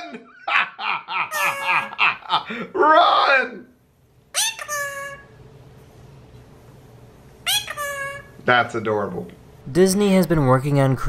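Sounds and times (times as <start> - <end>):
parakeet calling: 1.3 - 2.0, 4.3 - 5.4, 7.4 - 8.4.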